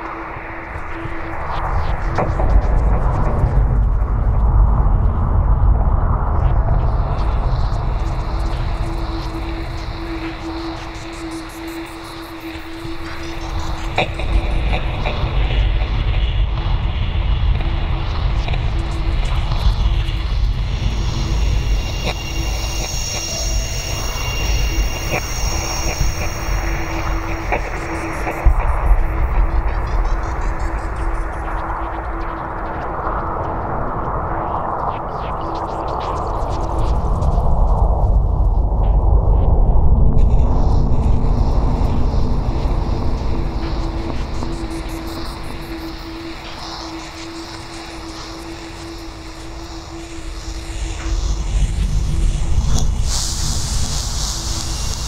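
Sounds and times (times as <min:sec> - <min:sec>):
deep low drone: 0:00.0 - 0:55.0
steady hum: 0:07.2 - 0:32.1, 0:39.6 - 0:55.0.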